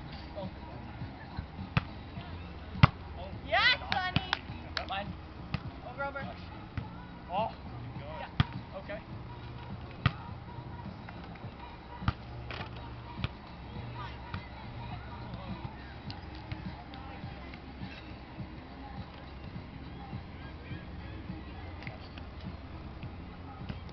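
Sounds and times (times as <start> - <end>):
players' voices: 0.1 - 23.9
volleyball being hit: 2.8 - 3.0.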